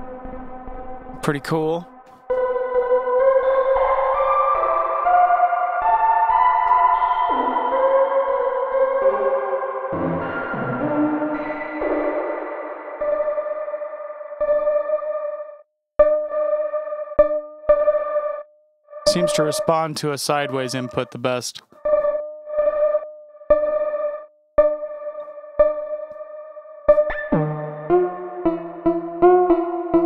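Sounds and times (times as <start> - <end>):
reverberant synthesizer tones: 0.0 - 1.2, 1.9 - 30.0.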